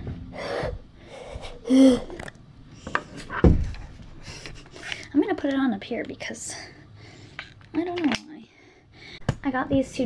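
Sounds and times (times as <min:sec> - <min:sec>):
girl gasping: 0:00.4 - 0:02.3.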